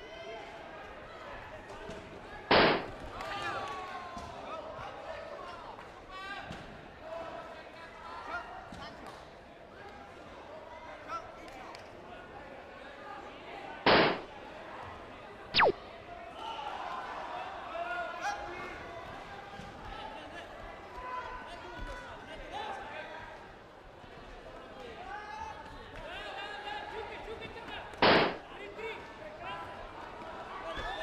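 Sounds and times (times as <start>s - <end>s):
chatter and shouts in sports hall: 0.0s - 31.0s.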